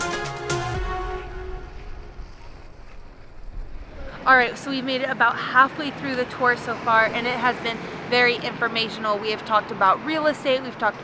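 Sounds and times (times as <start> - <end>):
wind rumbling on microphone: 1.2 - 5.2.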